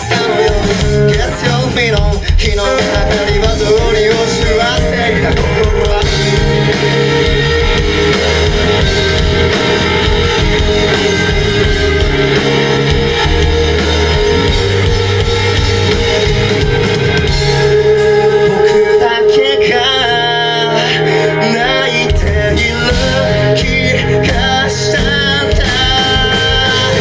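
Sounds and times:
live rock band playing: 0:00.0 - 0:27.0.

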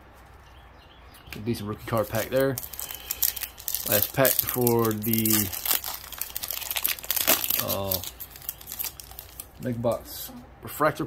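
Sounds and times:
plastic wrapper crinkling: 0:01.9 - 0:10.0.

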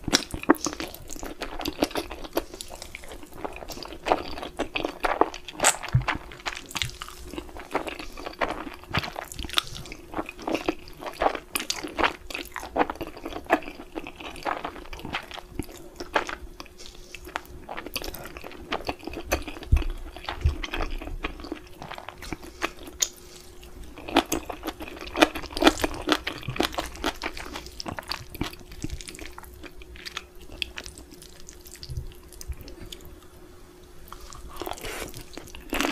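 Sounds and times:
wet chewing: 0:00.0 - 0:33.1.

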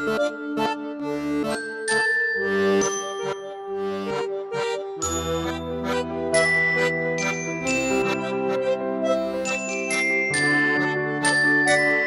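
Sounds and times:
sustained instrumental chords: 0:00.0 - 0:12.0.

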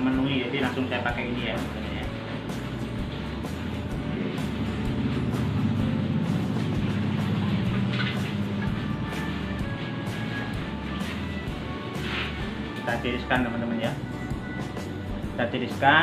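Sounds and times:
background music: 0:00.0 - 0:16.0
gas stove burner rumble: 0:00.0 - 0:16.0
water at a rolling boil: 0:00.0 - 0:16.0.

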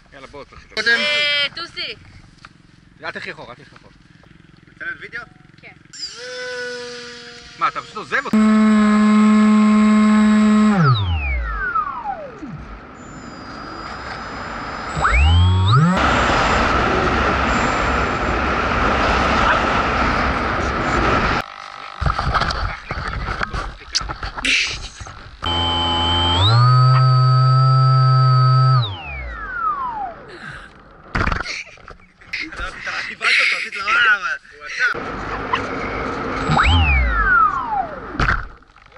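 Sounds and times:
model plane motor whining: 0:05.9 - 0:12.4, 0:25.4 - 0:30.3
rush of air: 0:16.0 - 0:21.4.

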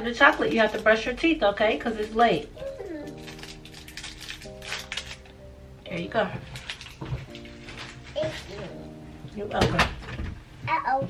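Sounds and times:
foil wrapper crackling: 0:00.0 - 0:09.0
background music with held notes: 0:00.0 - 0:11.0.

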